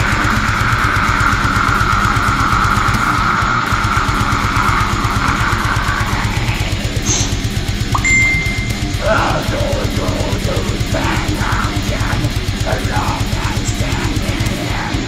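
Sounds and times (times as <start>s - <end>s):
heavy metal guitars and drums: 0.0s - 15.0s.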